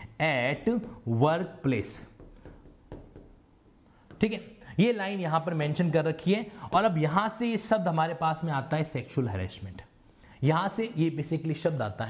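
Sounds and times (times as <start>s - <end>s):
pen scratching on board: 0.0s - 4.4s
pen tapping on board: 0.7s - 1.0s, 2.0s - 4.4s.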